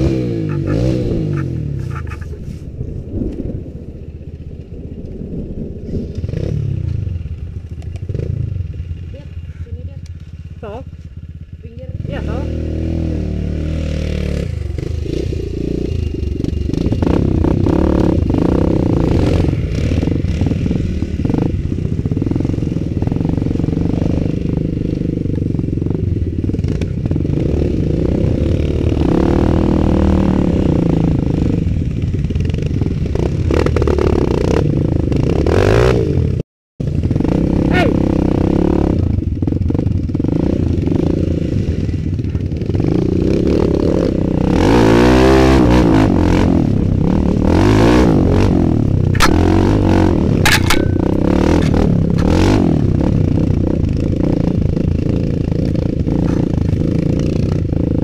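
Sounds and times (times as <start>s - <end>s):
motorcycle engine revving: 0.0s - 58.0s
bike rattling and knocking: 49.0s - 52.6s, 53.3s - 57.8s.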